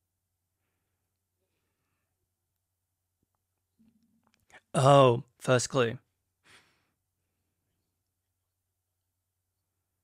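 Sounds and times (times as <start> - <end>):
faint breath out: 6.4 - 7.0.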